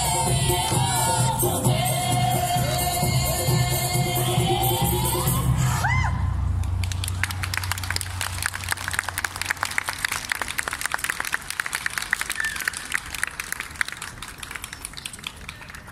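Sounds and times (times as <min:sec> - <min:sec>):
music: 0:00.0 - 0:05.9
audience applauding: 0:06.8 - 0:15.9.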